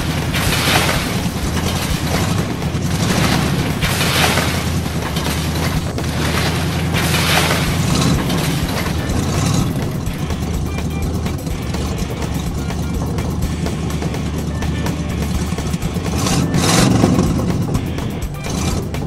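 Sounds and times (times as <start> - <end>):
background music: 0.0 - 19.0
cartoon monster truck engine: 0.0 - 19.0
rushing burst: 0.0 - 19.0.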